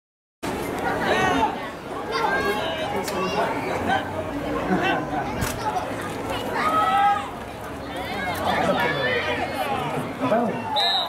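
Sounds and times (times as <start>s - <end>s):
crowd hubbub: 0.4s - 11.0s
spectators chattering: 0.4s - 11.0s.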